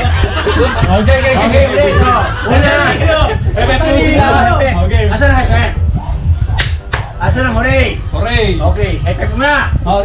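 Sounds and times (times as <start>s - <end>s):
loud party noise: 0.0s - 9.7s
sharp smacks: 6.6s - 7.1s.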